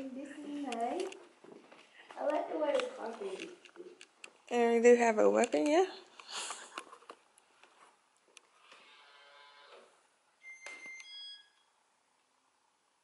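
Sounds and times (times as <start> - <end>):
soft rustle: 0.0 - 9.2.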